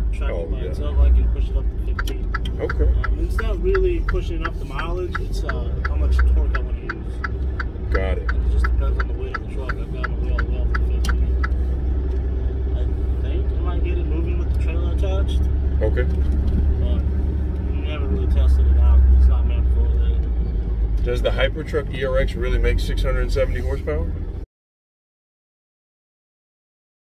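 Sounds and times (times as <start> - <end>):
truck engine and road rumble: 0.0 - 24.5
rapid ticking: 1.4 - 11.6.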